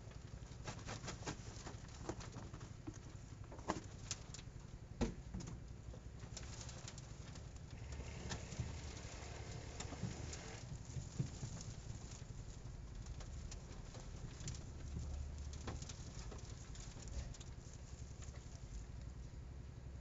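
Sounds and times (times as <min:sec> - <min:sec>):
soil pattering onto wire mesh: 0:00.0 - 0:19.3
leaves rustling: 0:06.4 - 0:18.9.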